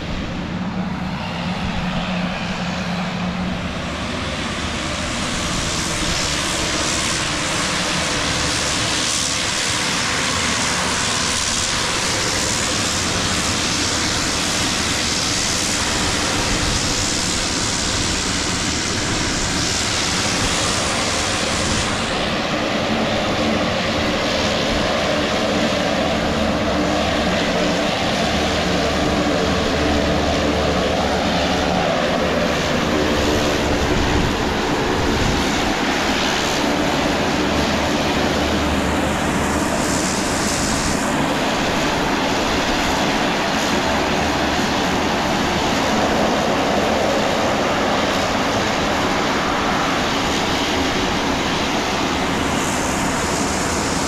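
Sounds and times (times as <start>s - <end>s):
engine and propeller hum: 0.0s - 54.0s
turboprop engine hiss and whine: 0.0s - 54.0s.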